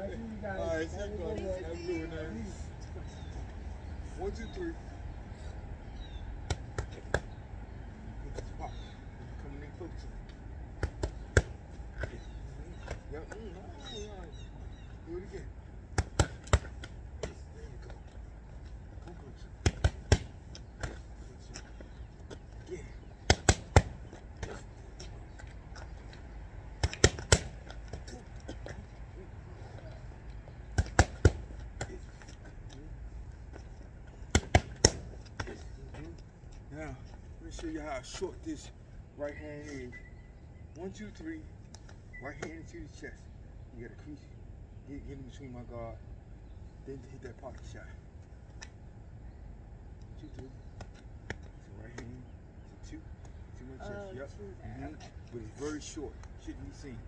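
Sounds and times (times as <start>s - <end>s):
boxing gloves smacking mitts: 15.9s - 17.5s, 19.6s - 21.2s, 23.2s - 25.1s, 26.8s - 28.8s, 30.7s - 32.2s, 34.2s - 35.7s.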